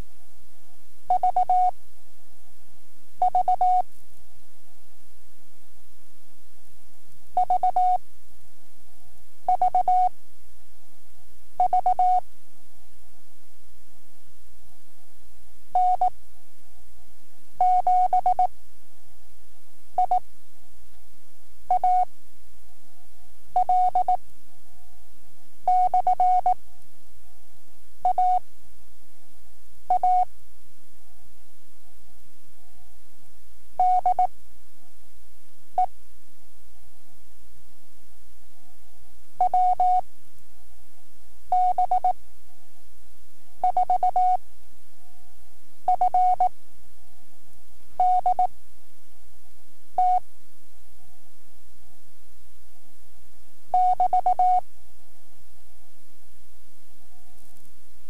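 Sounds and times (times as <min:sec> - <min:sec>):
steady hum: 0:00.0 - 0:58.0
morse code tone: 0:43.6 - 0:44.4, 0:45.9 - 0:46.5, 0:48.0 - 0:48.5, 0:53.8 - 0:54.6.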